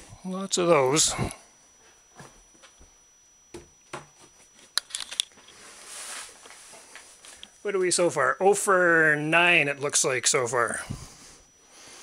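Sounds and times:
soft rustle: 5.3s - 7.6s.

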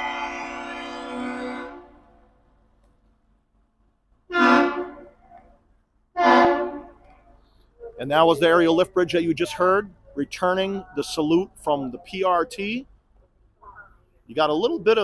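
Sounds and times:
bridge horn blasts: 0.0s - 2.1s, 4.3s - 5.2s, 6.2s - 7.1s.

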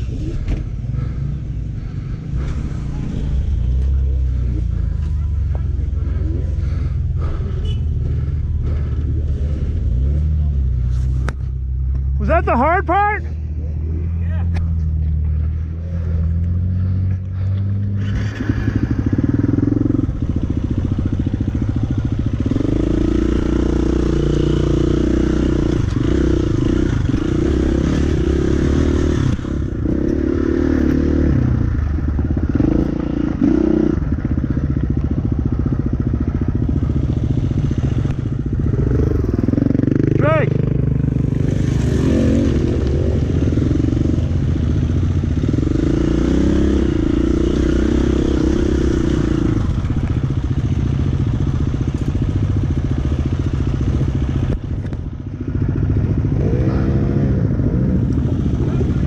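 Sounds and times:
dirt bike engine revving: 15.3s - 34.6s, 35.3s - 52.0s, 55.5s - 59.0s.

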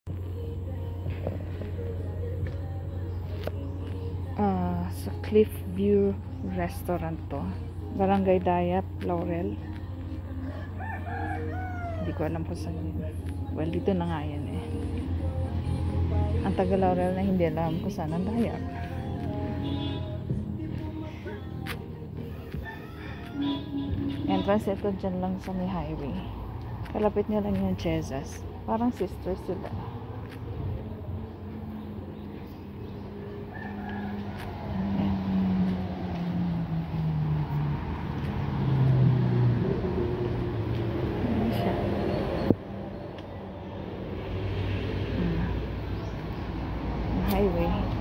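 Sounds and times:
vehicle engine droning: 0.1s - 48.0s
rooster crowing: 10.4s - 12.3s, 22.3s - 23.9s, 33.3s - 35.5s.

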